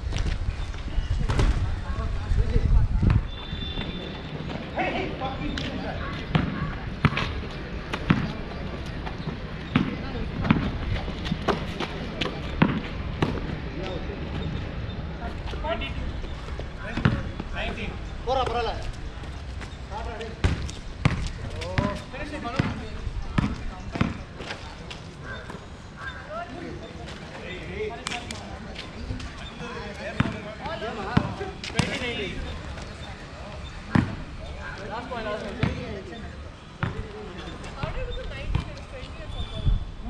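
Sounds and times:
basketball bouncing on asphalt: 5.6s - 13.6s, 16.2s - 25.6s, 30.0s - 34.4s, 35.4s - 36.1s, 36.8s - 39.1s.

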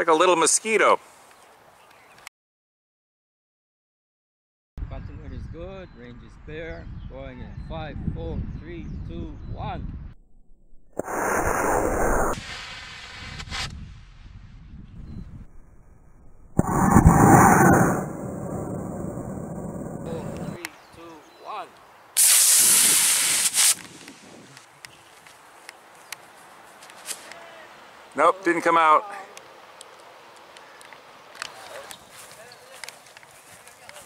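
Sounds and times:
rocket motor rushing hiss: 11.0s - 13.9s, 22.2s - 24.3s.

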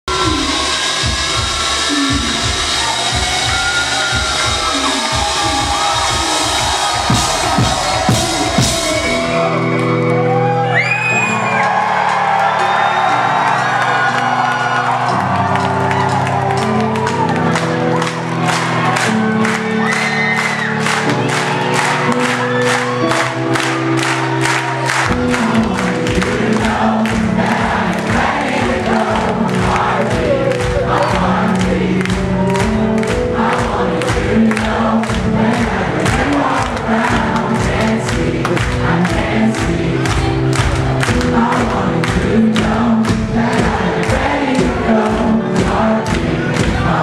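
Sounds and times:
low pulsing beat: 0.1s - 9.3s
crowd whistling: 0.1s - 16.5s, 19.4s - 23.3s
crowd cheering and whooping: 0.1s - 26.0s.

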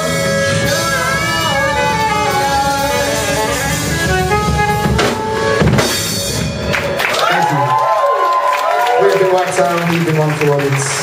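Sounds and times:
heavy drum hits and crashes: 0.0s - 7.1s
live rock band playing: 0.0s - 10.6s.

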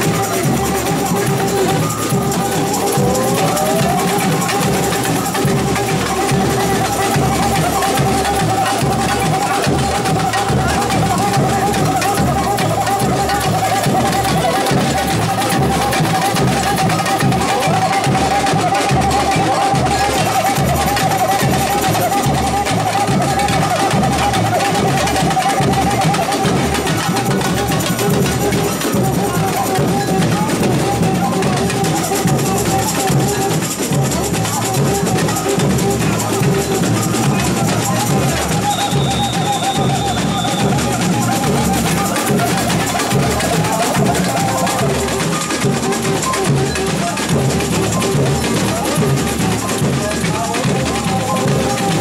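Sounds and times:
samba drums and percussion: 0.0s - 52.0s.

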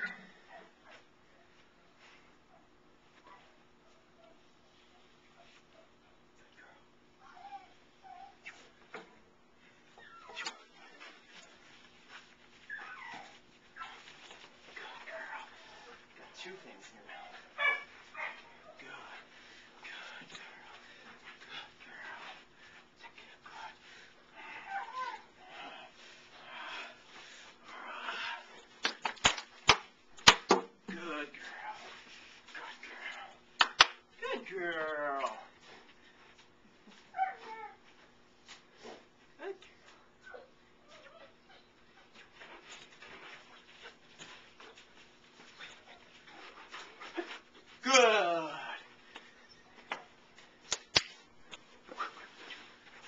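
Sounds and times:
puppy whimpering: 7.2s - 8.7s, 10.0s - 10.7s, 12.7s - 13.9s, 37.1s - 37.8s.

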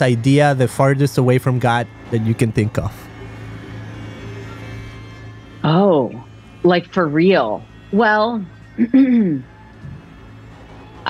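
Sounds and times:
faint held tones: 0.0s - 11.0s
steady low hum: 0.0s - 11.0s.

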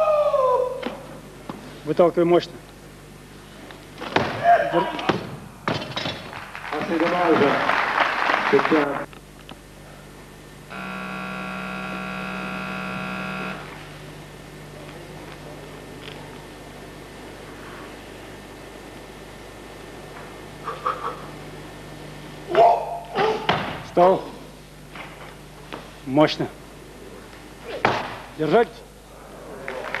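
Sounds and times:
person shouting: 0.0s - 0.9s, 4.4s - 5.0s, 22.5s - 23.5s
electronic buzzer tone: 10.7s - 13.8s.

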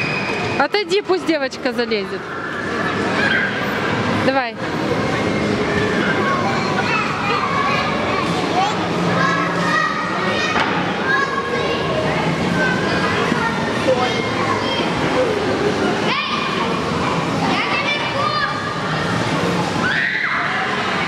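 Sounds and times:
children chattering: 2.0s - 21.0s.

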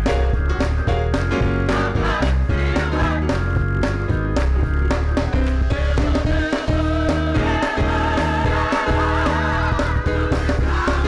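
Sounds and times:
band with steady beat: 0.0s - 11.0s
gospel choir singing: 1.5s - 3.5s, 5.4s - 11.0s.

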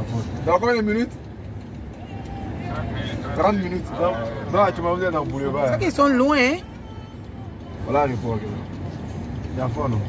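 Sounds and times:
car road and engine noise: 0.0s - 10.0s
faint voices: 1.7s - 10.0s.

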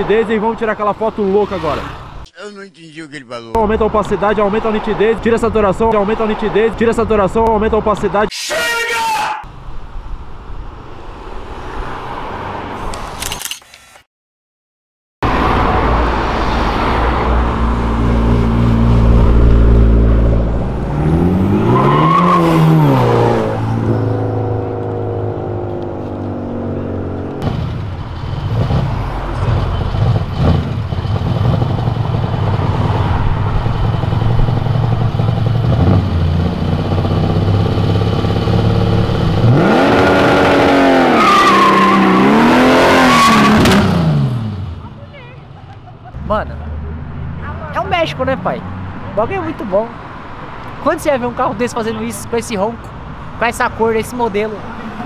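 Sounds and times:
car engines revving: 0.0s - 2.3s, 3.5s - 8.3s, 15.2s - 55.0s.

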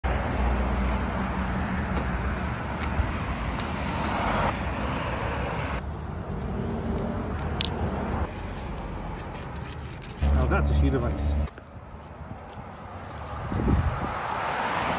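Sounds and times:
low rumble of traffic: 0.0s - 14.9s.

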